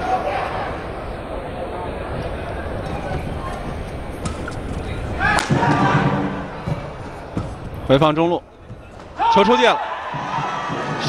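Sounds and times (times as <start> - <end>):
crowd noise: 0.0 - 11.0
racket striking shuttlecock: 5.3 - 5.8.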